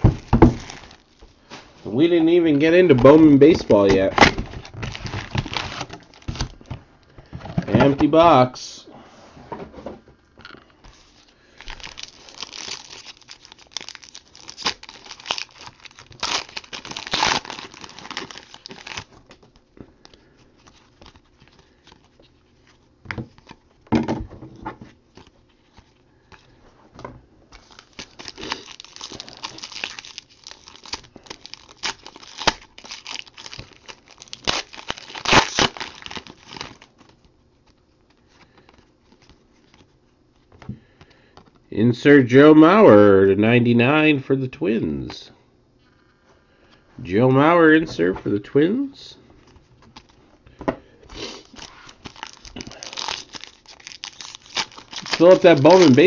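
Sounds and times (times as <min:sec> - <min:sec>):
wrappers torn and crinkled: 0:00.0 - 0:06.7, 0:11.1 - 0:19.6, 0:27.5 - 0:37.3, 0:51.2 - 0:56.0
cards shuffled by hand: 0:51.1 - 0:56.0.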